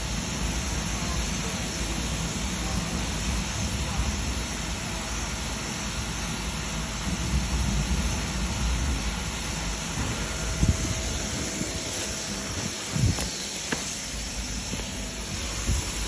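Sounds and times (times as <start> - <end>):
fire hose water jet hissing: 0.0 - 16.0.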